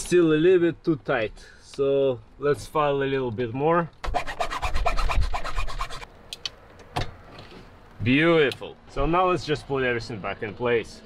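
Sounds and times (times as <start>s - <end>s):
hand file rasping on plastic: 4.1s - 6.1s.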